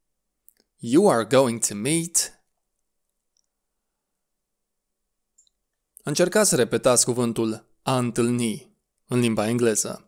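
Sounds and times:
faint click: 5.4 - 5.8.

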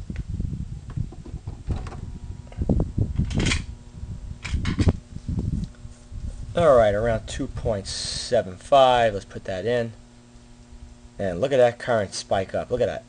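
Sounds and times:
faint steady circuit hum: 0.0 - 13.0.

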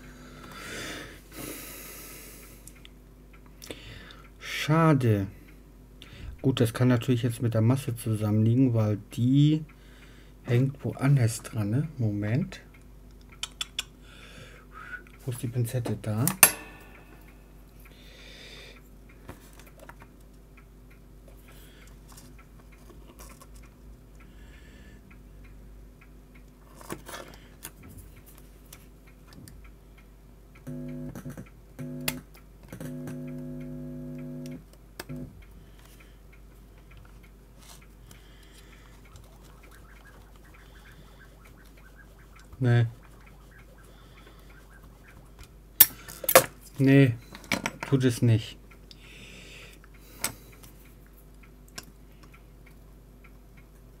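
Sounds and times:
low electrical hum: 0.0 - 54.0.

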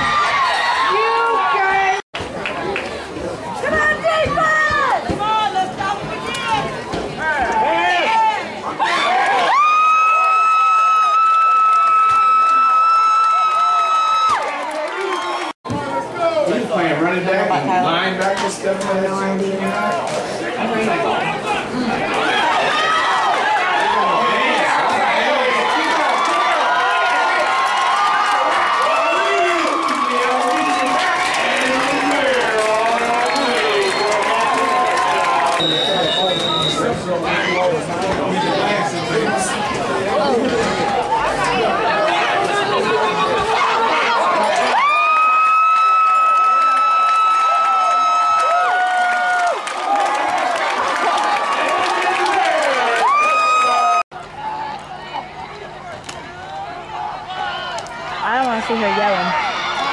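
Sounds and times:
spectators shouting and cheering: 0.0 - 18.0, 20.1 - 59.9.

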